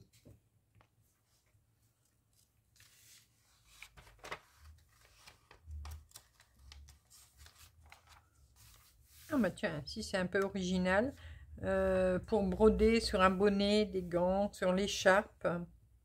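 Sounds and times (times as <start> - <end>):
magazine pages rustling: 1.2 - 9.5.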